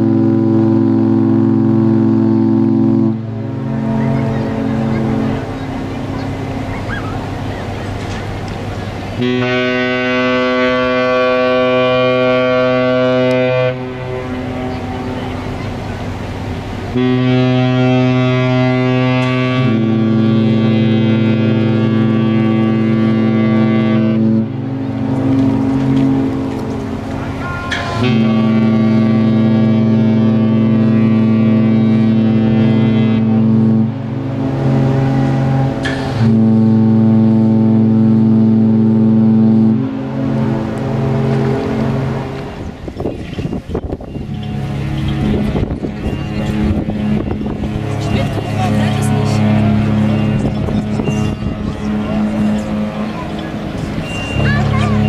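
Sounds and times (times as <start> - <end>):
ship horn blast: 0.0 - 55.0.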